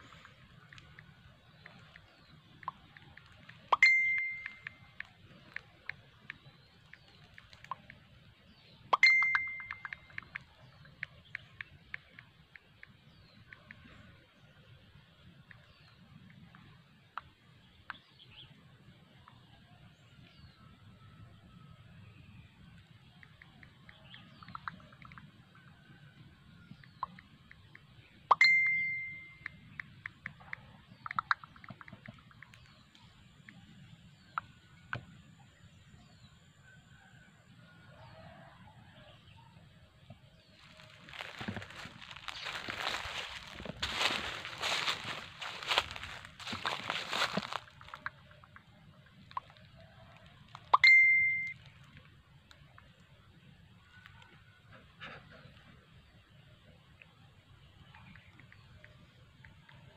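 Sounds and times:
faint scattered clicks: 0:00.0 - 0:14.2, 0:22.7 - 0:35.2
electronic notification ding: 0:03.8 - 0:04.8, 0:09.0 - 0:10.0
crackling rustle: 0:04.9 - 0:08.0, 0:40.5 - 0:50.7.

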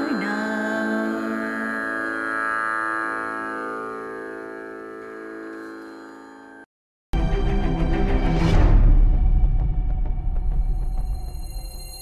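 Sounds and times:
person singing wavering note: 0:00.0 - 0:06.6
instruments holding sustained tones: 0:00.0 - 0:06.7.

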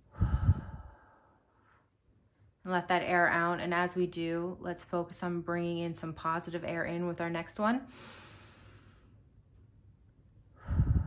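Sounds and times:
woman breathing in deeply: 0:00.0 - 0:01.8, 0:07.9 - 0:09.2, 0:10.6 - 0:11.0.

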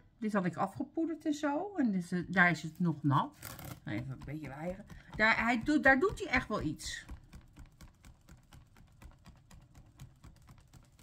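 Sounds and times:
hand fan clicking and rustling: 0:03.4 - 0:11.0.

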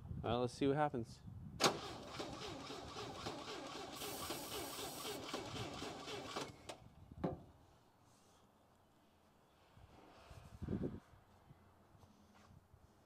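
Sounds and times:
engine cranking by starter motor: 0:01.6 - 0:06.8.

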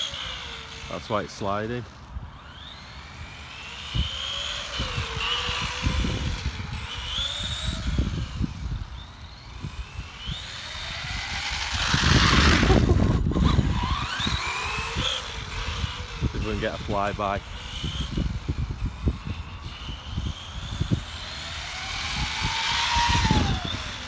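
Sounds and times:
electric motor whining: 0:00.0 - 0:24.0
rush of noise: 0:04.8 - 0:24.0.

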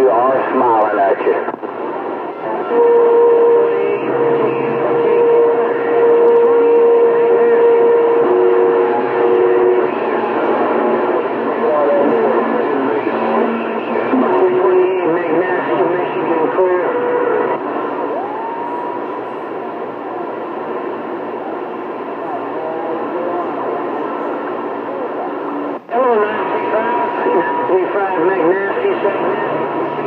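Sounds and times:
garbled radio voices: 0:00.0 - 0:18.0, 0:19.1 - 0:30.0
radio static: 0:00.0 - 0:30.0
rising radio whistle: 0:02.4 - 0:11.2, 0:12.0 - 0:20.3.

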